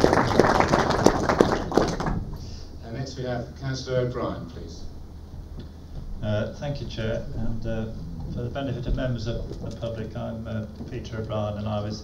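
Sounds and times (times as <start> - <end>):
loud close single claps: 0.0 - 2.3
applause of many hands: 0.0 - 2.4.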